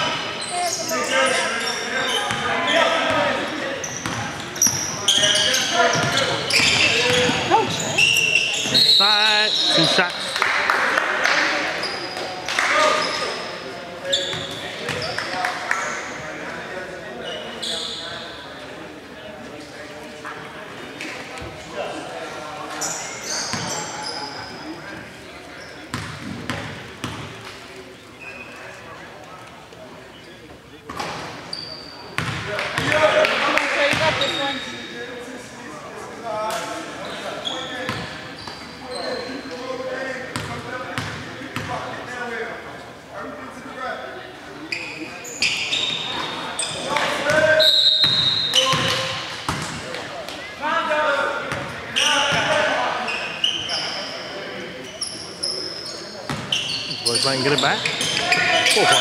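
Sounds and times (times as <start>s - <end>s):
shoe squeaks: 0.0s - 10.4s, 12.8s - 15.4s, 17.2s - 18.4s, 22.7s - 24.7s, 28.2s - 28.8s, 31.0s - 32.3s, 34.0s - 34.9s, 37.0s - 39.7s, 44.7s - 49.2s, 51.9s - 59.0s
players' voices: 0.0s - 59.0s.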